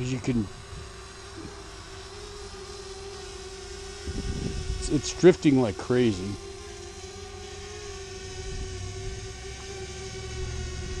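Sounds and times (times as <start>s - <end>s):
drone propeller hum: 0.0s - 11.0s.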